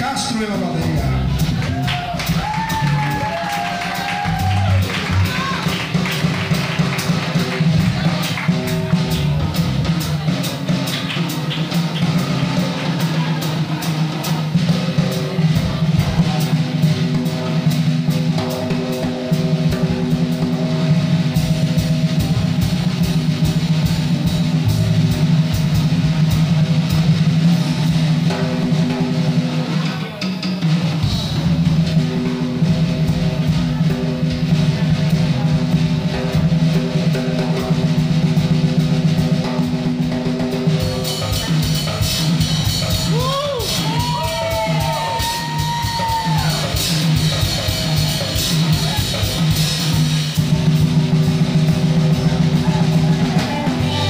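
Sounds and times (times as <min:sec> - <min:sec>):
electric bass notes: 0:00.0 - 0:03.5, 0:04.1 - 0:10.7, 0:14.6 - 0:29.6, 0:46.6 - 0:54.0
snare and bass drum: 0:00.0 - 0:54.0.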